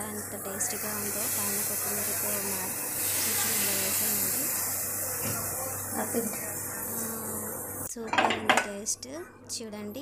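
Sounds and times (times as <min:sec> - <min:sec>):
chicken sizzling in a pan: 0:00.7 - 0:07.3.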